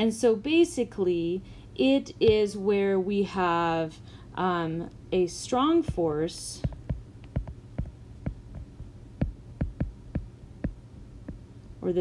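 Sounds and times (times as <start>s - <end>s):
low steady hum: 0.0s - 12.0s
stylus tapping on glass screen: 6.6s - 11.4s.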